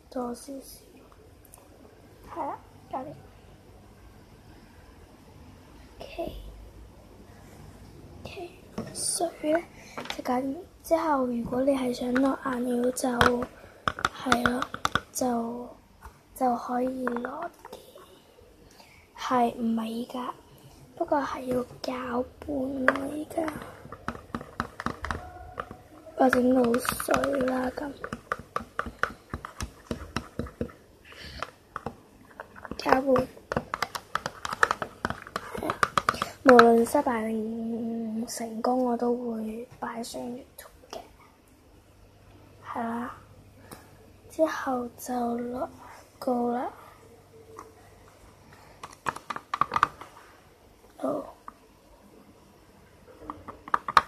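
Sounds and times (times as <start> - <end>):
stick tapping plastic tub: 12.0 - 15.2, 16.9 - 17.6, 22.8 - 36.9, 48.8 - 50.1, 53.3 - 54.0.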